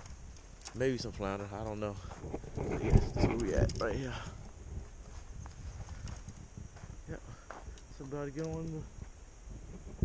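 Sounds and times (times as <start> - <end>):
footsteps on dirt path: 0.0 - 9.2.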